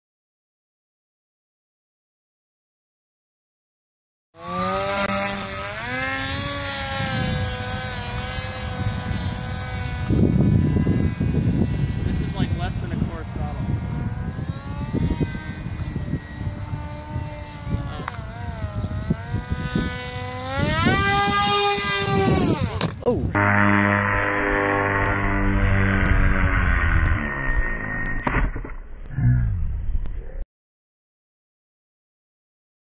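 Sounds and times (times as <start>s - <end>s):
electric motor and propeller whine: 4.4s - 29.0s
wind rumble on microphone: 5.1s - 28.3s.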